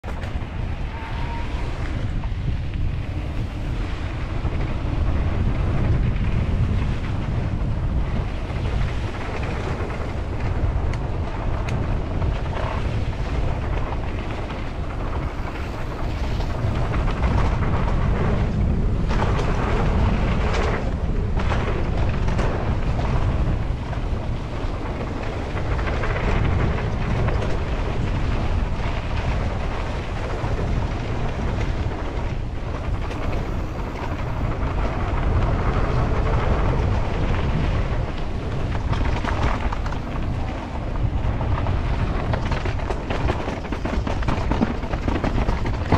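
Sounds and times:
bike tyres rolling on dirt: 0.0s - 45.9s
wind buffeting microphone: 0.0s - 45.9s.

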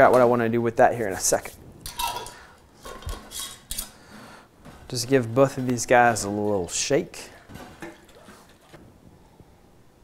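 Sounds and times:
metal lids scraping on glass jars: 1.9s - 4.0s.

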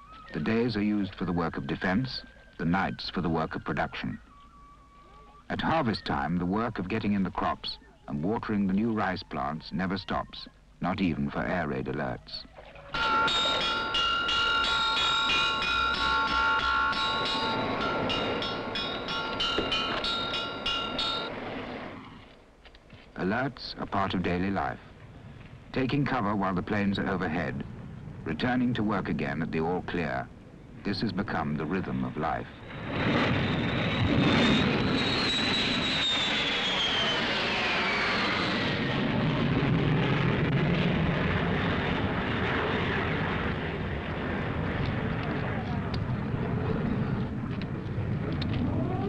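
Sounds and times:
jet aircraft passing overhead: 12.9s - 22.3s, 24.3s - 49.0s
metal alarm struck rapidly: 13.0s - 21.3s.

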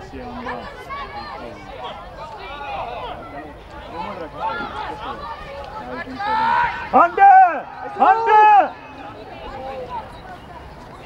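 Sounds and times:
crowd calling and shouting: 0.0s - 11.0s.

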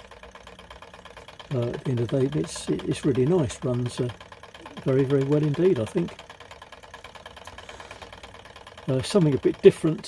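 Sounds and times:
model engine ticking: 0.0s - 10.0s.

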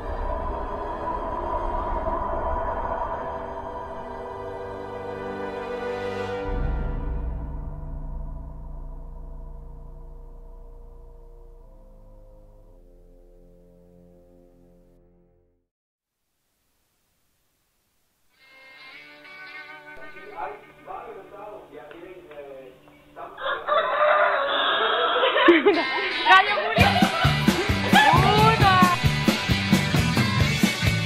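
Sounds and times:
low sustained ringing tones: 7.0s - 14.6s
faint music: 18.4s - 24.3s.

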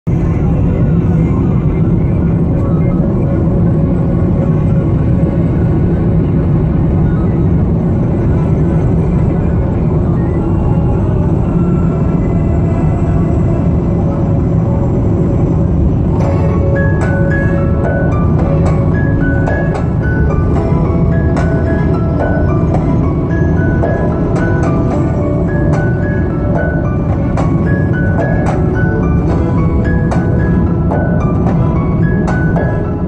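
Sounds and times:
background music: 0.1s - 33.0s
steady low rumble: 0.1s - 33.0s.

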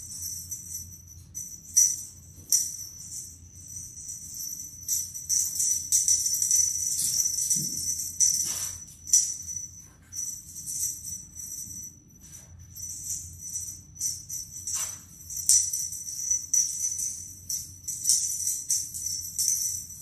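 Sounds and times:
small jingle bell jingling: 0.0s - 20.0s.

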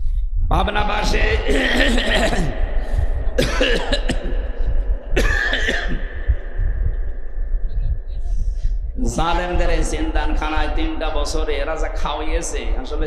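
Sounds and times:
low hum: 0.0s - 13.0s
steady sound system tone: 0.0s - 13.0s
man coughing over loudspeakers: 1.0s - 6.4s.

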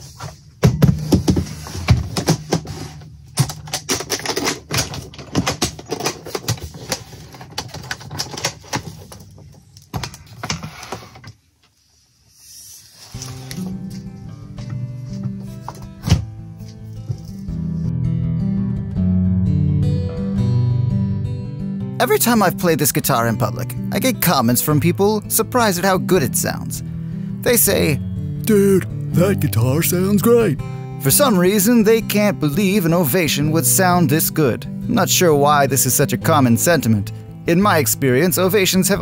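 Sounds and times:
guitar case clicks and knocks: 0.6s - 10.6s
acoustic guitar playing chords: 13.2s - 38.9s.

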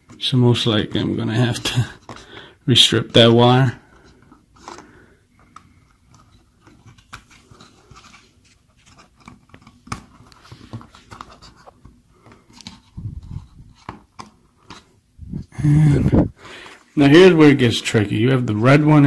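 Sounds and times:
faint handling noise: 0.0s - 19.0s.

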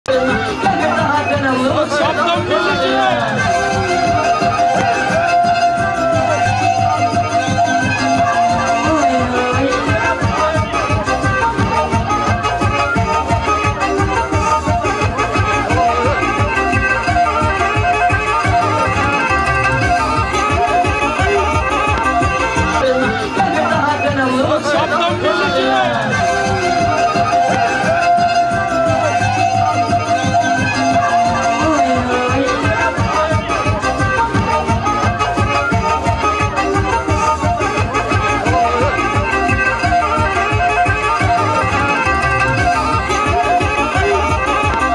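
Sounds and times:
fiddle dance music with beat: 0.1s - 44.9s.

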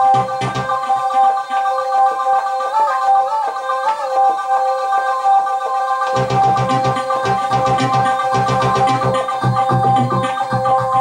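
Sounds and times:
synthesizer arpeggiator tones: 0.0s - 11.0s.

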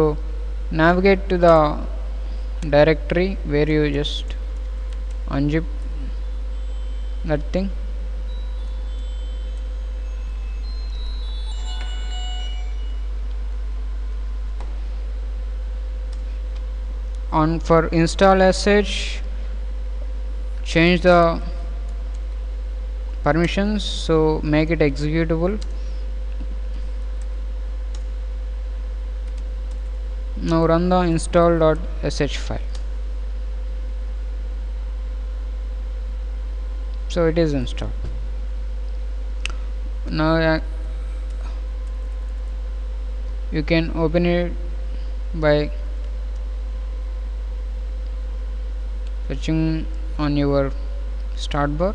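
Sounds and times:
low electrical hum: 0.0s - 51.9s
short high-pitched tones: 8.3s - 13.2s.

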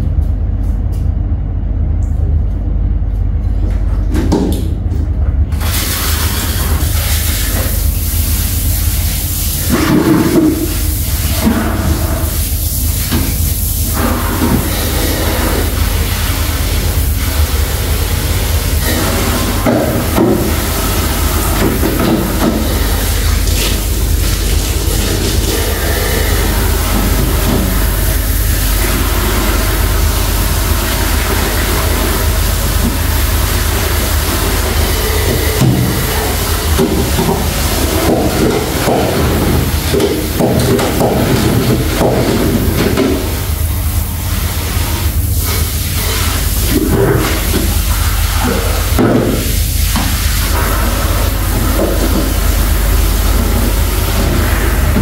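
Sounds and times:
shower spraying onto tiled floor: 5.5s - 55.0s
mop working over wet tiles: 5.6s - 55.0s.

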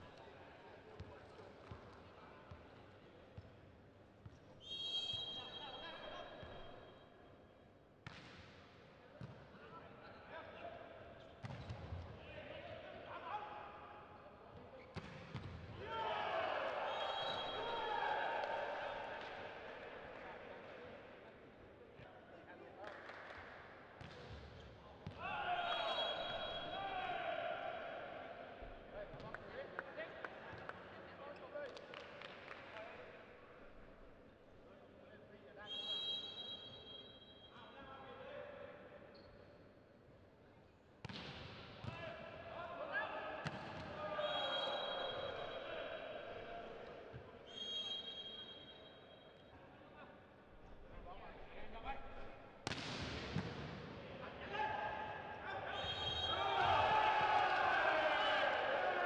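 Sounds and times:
referee's whistle: 4.6s - 6.9s, 16.9s - 17.9s, 25.6s - 27.1s, 35.6s - 37.7s, 44.0s - 45.8s, 47.5s - 49.4s, 55.6s - 56.9s
crowd shouting and cheering: 15.8s - 19.9s, 25.2s - 28.4s, 54.4s - 59.0s
volleyball smack: 52.6s - 53.8s.

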